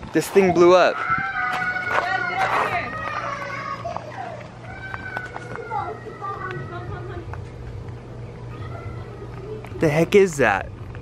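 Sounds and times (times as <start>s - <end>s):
adults and children talking: 0.0s - 11.0s
steady low hum: 2.7s - 11.0s.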